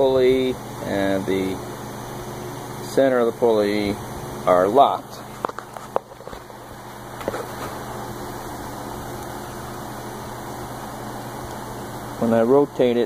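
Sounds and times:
electric fan humming: 0:00.0 - 0:13.0.

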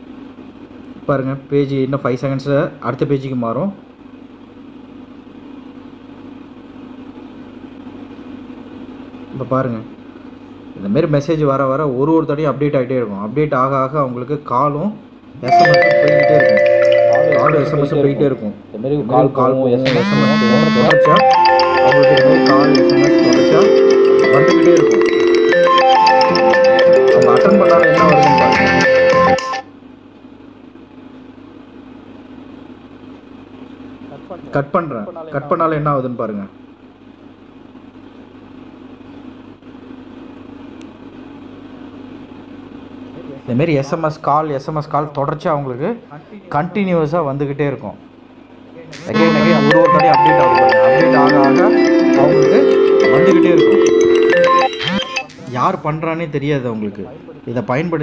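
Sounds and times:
phone line hum with hiss: 0:15.4 - 0:19.2, 0:19.8 - 0:29.9, 0:48.9 - 0:55.8.

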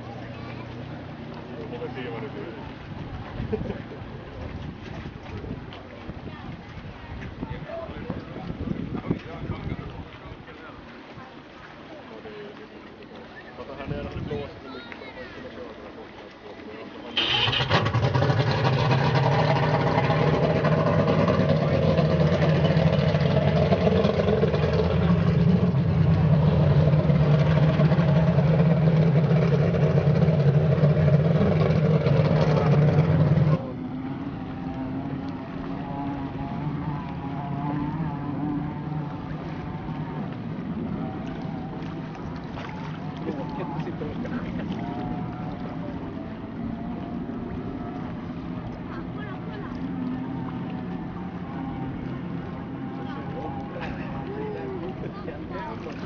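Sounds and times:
powerboat engine running: 0:00.0 - 0:14.7, 0:15.4 - 0:56.0.

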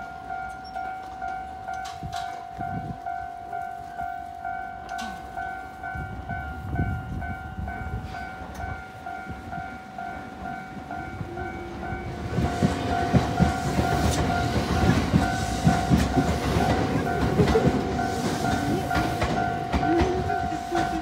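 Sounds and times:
level-crossing warning bell: 0:00.0 - 0:21.0
train wheels clacking over rails: 0:08.0 - 0:21.0.

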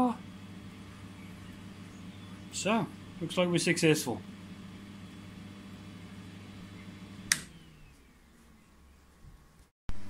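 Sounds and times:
laser cutter humming: 0:00.0 - 0:07.8
fans whining down: 0:00.0 - 0:09.2
switch click: 0:07.3 - 0:07.6.

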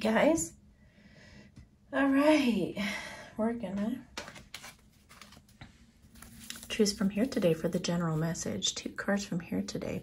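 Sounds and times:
cards tapping and rustling: 0:04.1 - 0:07.6.

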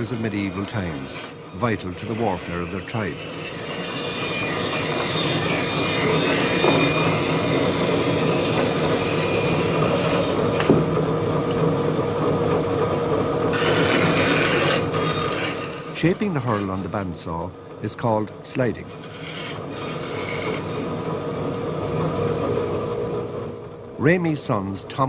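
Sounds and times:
bandsaw cutting wood: 0:00.0 - 0:11.0, 0:13.5 - 0:18.0, 0:18.6 - 0:21.1
machine hum: 0:00.0 - 0:25.0.

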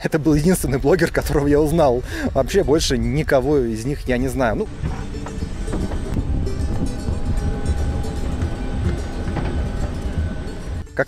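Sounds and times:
wind buffeting microphone: 0:00.1 - 0:10.8
faint steady whine: 0:00.2 - 0:10.9.

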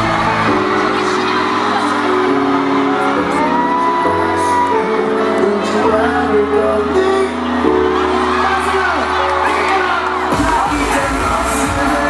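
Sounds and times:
person singing: 0:00.0 - 0:07.9, 0:09.9 - 0:12.0.

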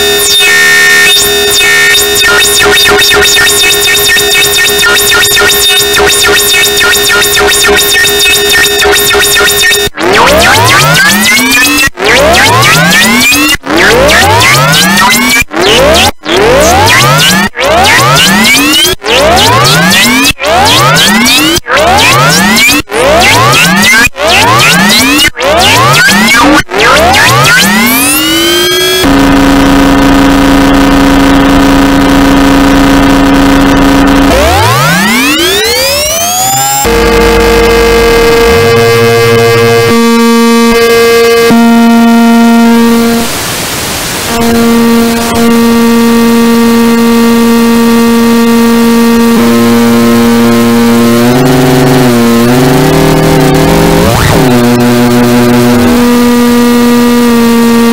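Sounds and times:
synthesizer rising pitch sweeps: 0:00.0 - 0:57.9.

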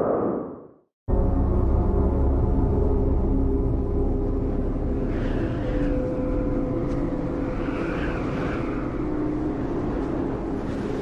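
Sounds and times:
strong wind rumbling: 0:02.4 - 0:11.0.

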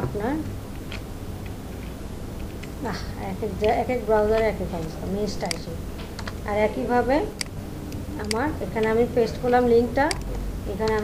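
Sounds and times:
woman speaking: 0:00.0 - 0:00.6, 0:02.8 - 0:07.4, 0:08.1 - 0:11.0
computer keyboard key clicks: 0:10.1 - 0:11.0.

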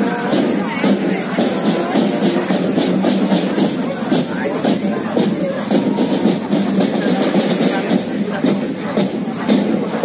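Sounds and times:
drums beating: 0:00.0 - 0:10.0
marching band playing: 0:00.0 - 0:10.0
nearby voices: 0:00.0 - 0:10.0.

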